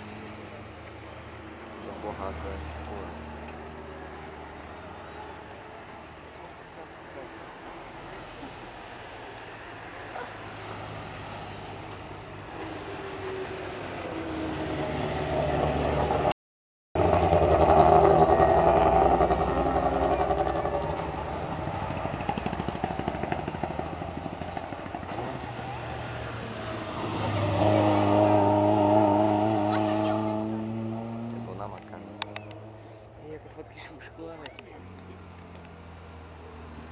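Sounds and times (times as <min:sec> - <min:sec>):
race car engines revving: 0:00.0 - 0:16.3, 0:17.0 - 0:36.9.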